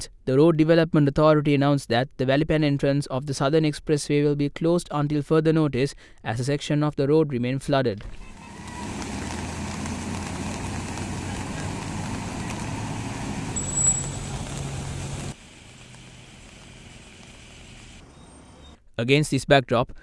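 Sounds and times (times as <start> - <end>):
traffic hum: 8.1 - 18.8
vehicle engine hum: 8.2 - 18.8.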